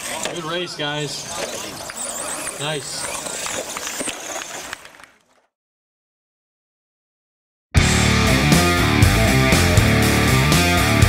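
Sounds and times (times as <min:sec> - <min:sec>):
outdoor noise: 0:00.0 - 0:05.6.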